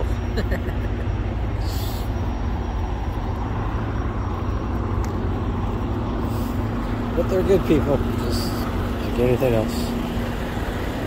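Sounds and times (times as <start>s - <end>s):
diesel truck engine idling: 0.0s - 11.0s.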